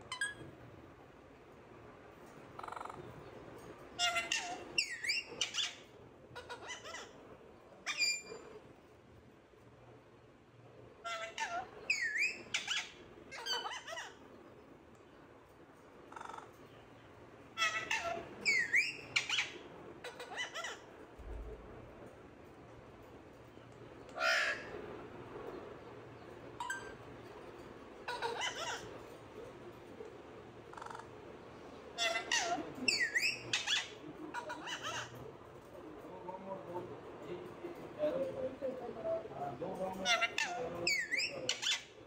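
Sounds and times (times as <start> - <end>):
parakeet calling: 0.0 - 0.5, 2.5 - 3.3, 3.9 - 8.6, 11.0 - 14.6, 16.1 - 16.8, 17.5 - 21.4, 24.1 - 24.8, 26.2 - 29.6, 30.6 - 35.6, 40.0 - 42.0.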